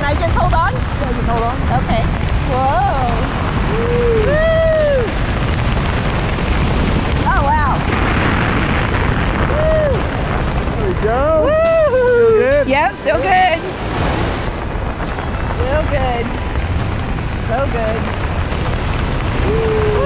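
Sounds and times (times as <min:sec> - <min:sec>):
wind rushing over microphone: 0:00.0 - 0:20.0
woman whooping and squealing: 0:03.7 - 0:05.2, 0:09.5 - 0:10.0, 0:11.4 - 0:12.6, 0:19.4 - 0:20.0.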